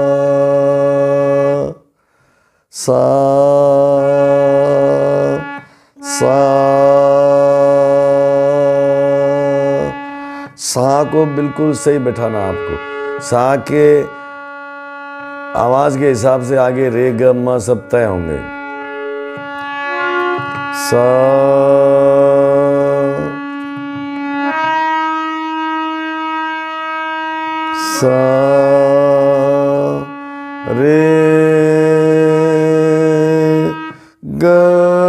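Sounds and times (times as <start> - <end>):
harmonium holding note: 0.0 - 1.8, 2.9 - 35.0
man singing held note: 0.0 - 1.9, 2.8 - 26.0, 27.0 - 35.0.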